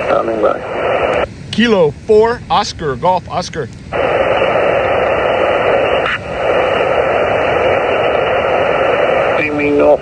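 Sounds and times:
radio static hiss: 0.0s - 10.0s.

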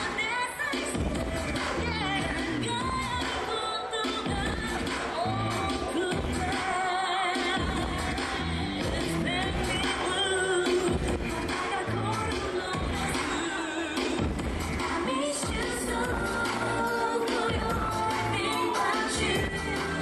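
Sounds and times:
pop song over loudspeakers: 0.0s - 20.0s.

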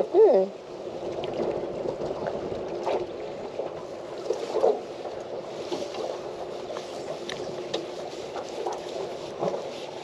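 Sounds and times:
water washing around boat: 0.0s - 10.0s
wind: 0.0s - 10.0s
knocks and rustles of fish: 0.9s - 10.0s.

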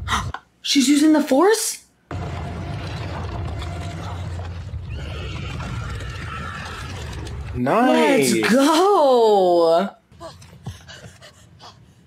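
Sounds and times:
low rumble: 2.1s - 7.6s.

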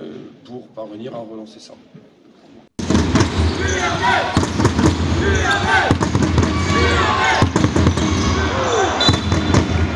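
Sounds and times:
sneaker squeaks: 3.2s - 4.6s.

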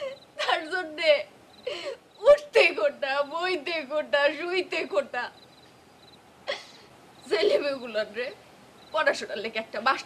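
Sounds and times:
woman crying: 0.0s - 2.0s, 6.5s - 7.8s.

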